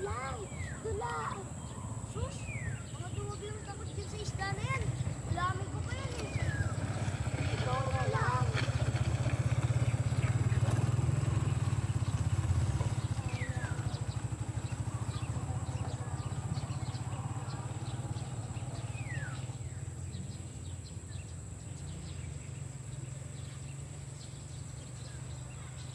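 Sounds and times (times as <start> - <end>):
small engine puttering: 0.0 - 25.9.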